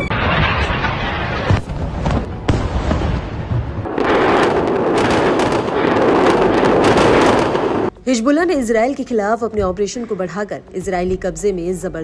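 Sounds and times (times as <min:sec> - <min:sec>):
explosions and rocket fire: 0:00.0 - 0:07.9.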